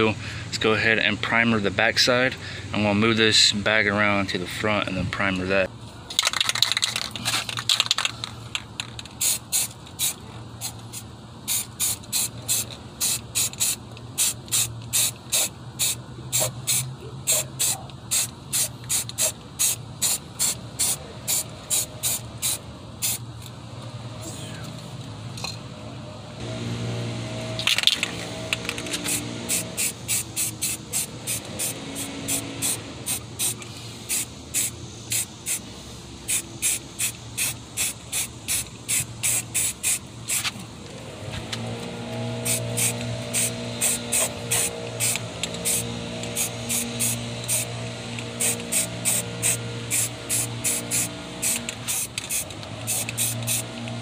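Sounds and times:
aerosol spray can bursts: 0:09.2 - 0:23.2, 0:27.6 - 0:35.6, 0:36.2 - 0:40.6, 0:42.4 - 0:47.7, 0:48.3 - 0:53.8.

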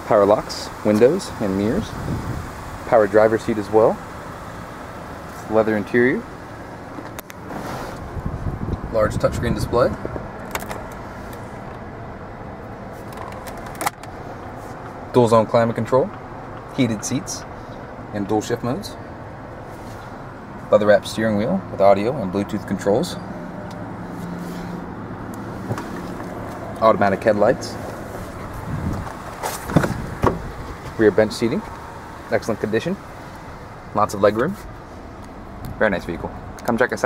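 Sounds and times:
car engine idling hum: 0:00.0 - 0:37.0
car door latch clicks and knocks: 0:29.7 - 0:31.0.

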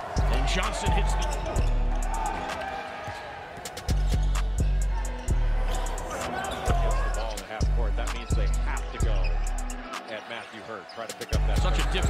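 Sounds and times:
hip-hop beat: 0:00.0 - 0:02.7, 0:03.6 - 0:10.1, 0:11.1 - 0:12.0.

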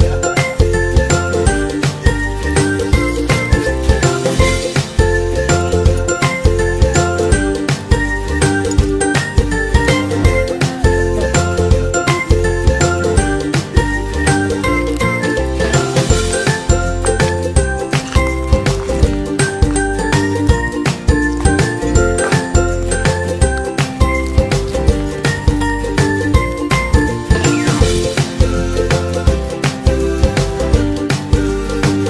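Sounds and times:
upbeat instrumental music: 0:00.0 - 0:32.0.

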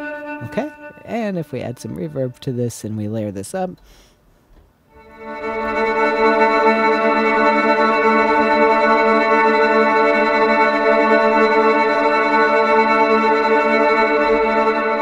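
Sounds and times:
ambient synthesizer chord: 0:00.0 - 0:02.7, 0:04.9 - 0:15.0.

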